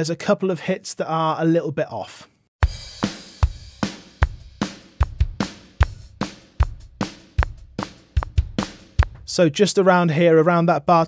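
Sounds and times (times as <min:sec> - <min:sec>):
acoustic drum kit beat: 0:02.6 - 0:09.4.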